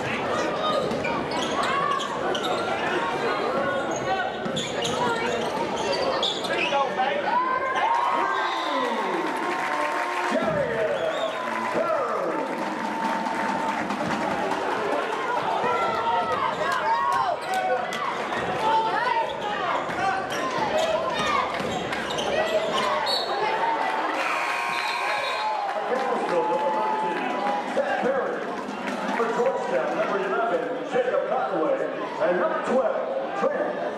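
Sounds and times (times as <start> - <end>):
crowd chatter: 0.0 - 33.9
sneakers squeaking: 0.6 - 7.0, 19.2 - 23.4.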